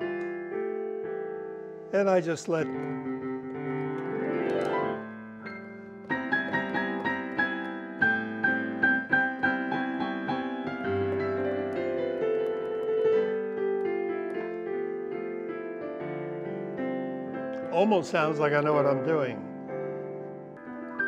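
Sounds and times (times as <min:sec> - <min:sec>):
improvised piano: 0:00.0 - 0:21.0.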